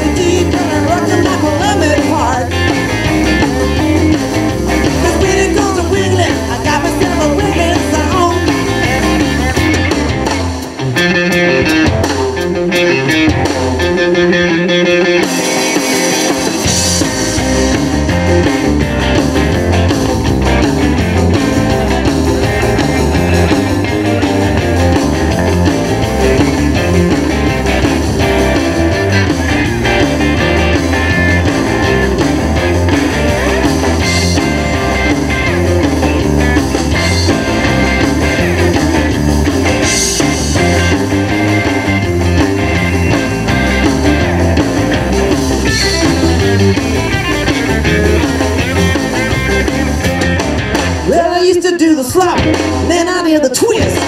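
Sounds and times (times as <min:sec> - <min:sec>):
bass and drums: 0:00.0 - 0:54.0
electric guitars: 0:00.0 - 0:54.0.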